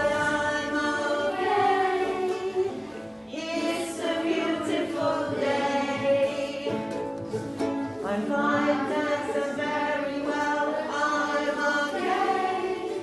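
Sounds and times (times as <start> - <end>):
children singing together: 0.0 - 7.4, 8.0 - 13.0.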